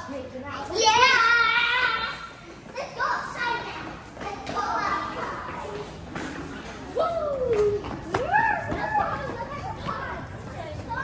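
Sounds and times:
children calling out and talking: 0:00.0 - 0:11.0.

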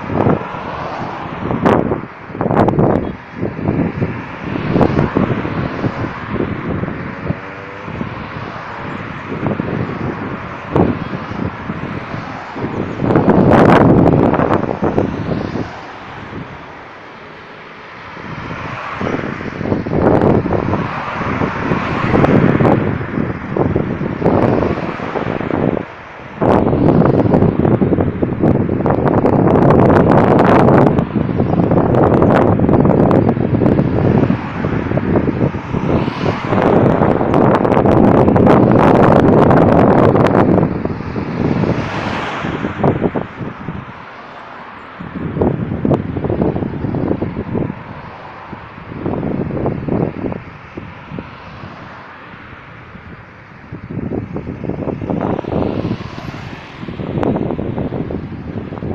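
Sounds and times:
cars passing: 0:00.0 - 0:58.9
wind buffeting microphone: 0:00.0 - 0:58.9.

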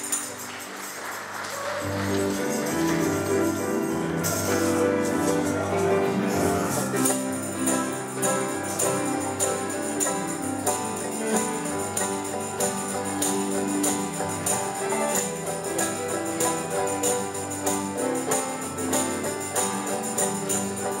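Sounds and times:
band playing music with steady beat: 0:01.5 - 0:21.0.

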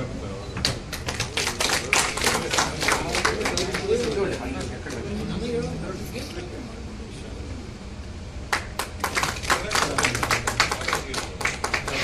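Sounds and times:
small group applauding: 0:00.6 - 0:05.1, 0:08.5 - 0:12.0.

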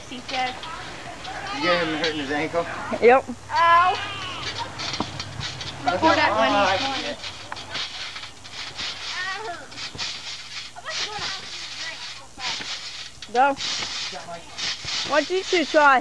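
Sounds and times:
children's voices: 0:00.0 - 0:02.0, 0:03.5 - 0:04.9, 0:09.0 - 0:09.8, 0:10.8 - 0:12.6
trampoline thumps and rustles: 0:00.2 - 0:02.4, 0:03.9 - 0:16.0.

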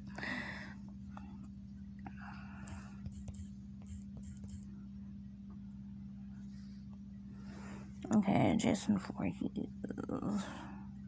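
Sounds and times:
low electrical hum: 0:00.0 - 0:11.0
touchscreen typing taps: 0:03.1 - 0:04.6.

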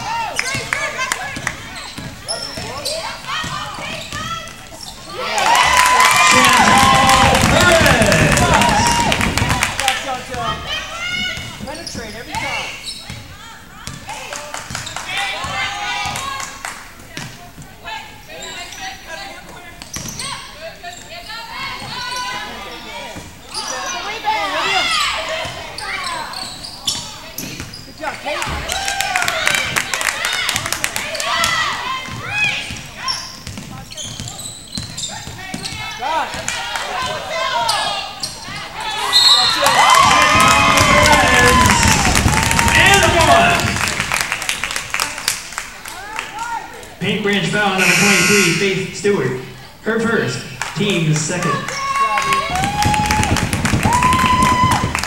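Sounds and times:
people calling out: 0:47.7 - 0:49.0.

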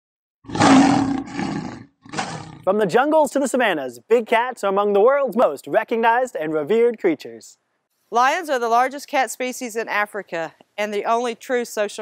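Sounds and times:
lion roaring: 0:00.5 - 0:02.7.

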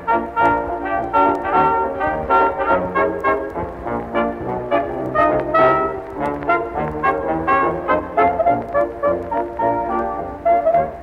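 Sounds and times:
dance orchestra with brass: 0:00.0 - 0:11.0.

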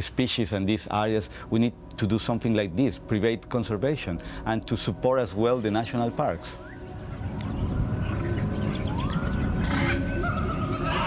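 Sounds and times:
gliding whistling calls: 0:05.5 - 0:11.0
dense low animal calls: 0:07.0 - 0:11.0.

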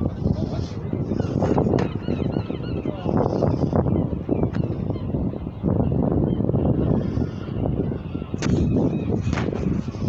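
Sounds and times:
birds calling: 0:00.0 - 0:10.0
wind rumble on microphone: 0:00.0 - 0:10.0.

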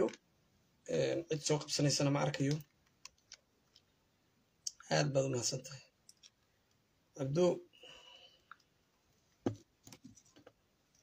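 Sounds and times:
man speaking: 0:00.8 - 0:02.7, 0:04.7 - 0:05.9, 0:07.2 - 0:07.7.

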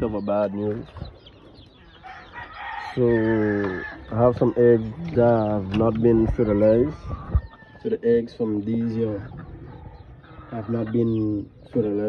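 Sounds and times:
man speaking: 0:00.0 - 0:00.9, 0:03.0 - 0:07.1, 0:07.8 - 0:09.3, 0:10.5 - 0:12.0
rooster crowing: 0:02.0 - 0:04.3.

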